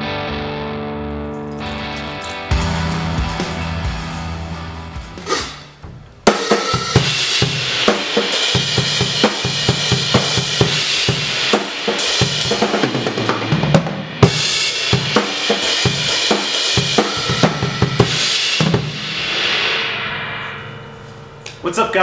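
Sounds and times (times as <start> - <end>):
drum kit played hard: 1.8 - 21.4
cymbal crash: 2.4 - 22.0.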